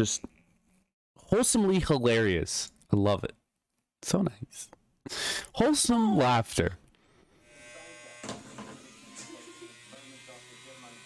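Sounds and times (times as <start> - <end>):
gadget buzzing on tabletop: 7.4 - 11.0.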